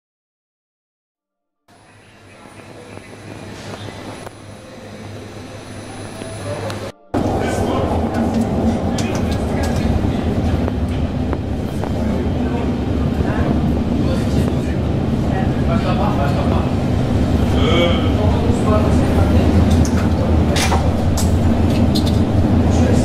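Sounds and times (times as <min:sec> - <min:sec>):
train rumble and motor hum: 0:01.7 - 0:23.0
rail clicks: 0:02.3 - 0:23.0.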